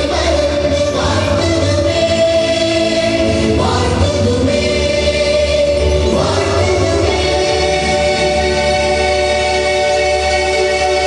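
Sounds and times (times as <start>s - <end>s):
choir singing slow song: 0.0s - 11.0s.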